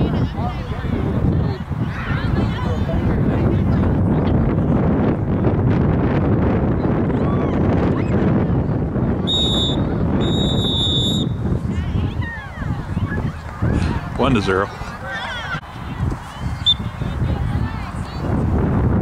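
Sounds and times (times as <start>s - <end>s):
wind rumbling on microphone: 0.0s - 19.0s
referee's whistle blasts: 9.3s - 11.4s.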